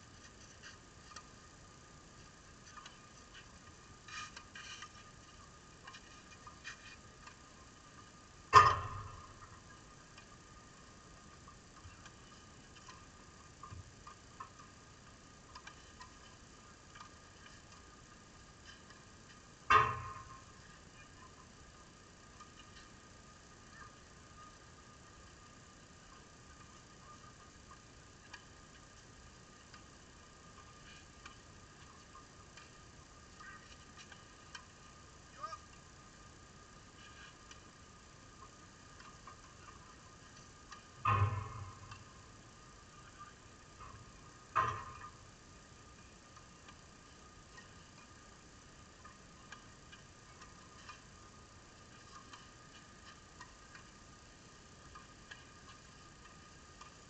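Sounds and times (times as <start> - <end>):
faint steady whine: 0.0 - 57.0
faint ticks: 0.0 - 57.0.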